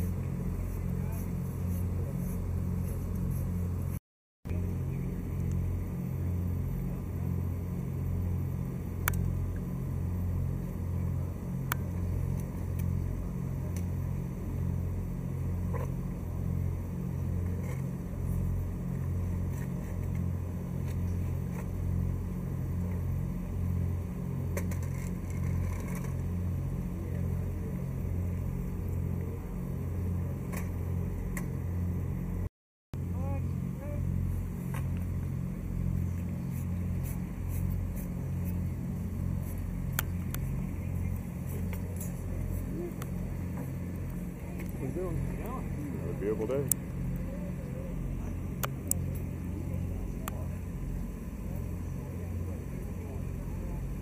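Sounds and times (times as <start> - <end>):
motor running with pulsing drone: 0.0 - 54.0.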